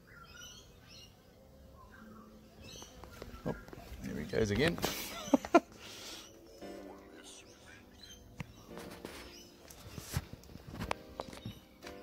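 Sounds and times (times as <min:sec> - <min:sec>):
honeybee buzzing: 0:00.0 - 0:12.0.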